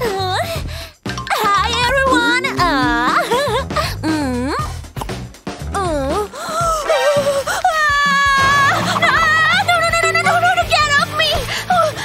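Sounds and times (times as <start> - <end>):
background music: 0.0 - 12.0
woman whining and wailing: 1.9 - 4.6, 5.8 - 10.6
woman screaming: 6.8 - 10.9.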